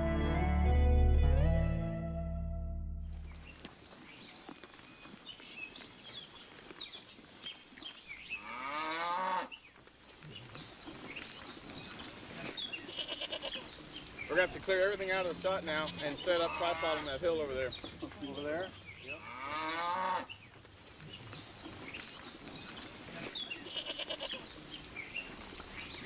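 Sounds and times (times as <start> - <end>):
title music: 0.0 - 3.2
cow mooing: 8.4 - 9.5, 19.1 - 20.3.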